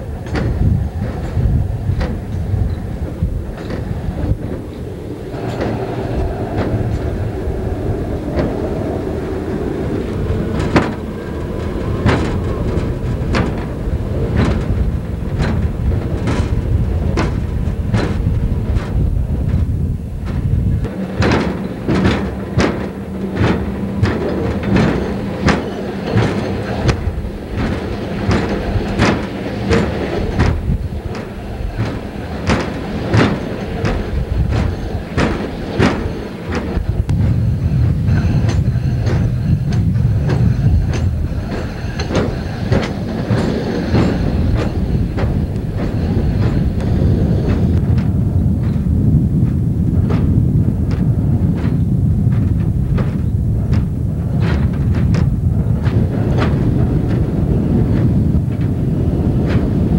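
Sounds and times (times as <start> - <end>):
truck rumbling on rails: 0.0 - 59.9
wheels clicking over rail joints: 0.0 - 59.9.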